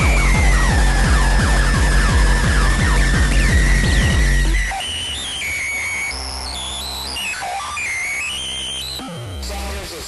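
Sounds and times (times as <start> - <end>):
low bass drone: 0.0 - 4.7
high whistle-like synth line: 0.0 - 9.0.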